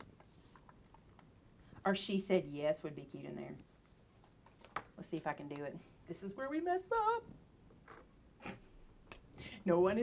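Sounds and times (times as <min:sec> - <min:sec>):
computer keyboard typing: 0:00.0 - 0:01.3.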